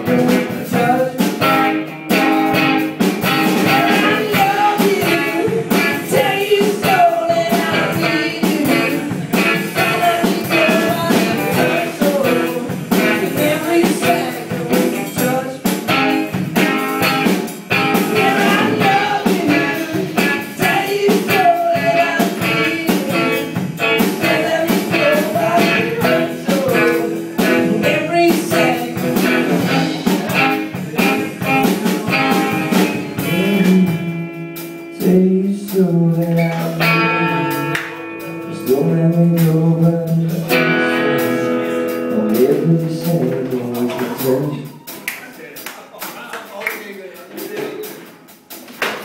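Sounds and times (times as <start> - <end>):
strummed guitar: 0.0 - 44.6
man singing: 0.0 - 44.9.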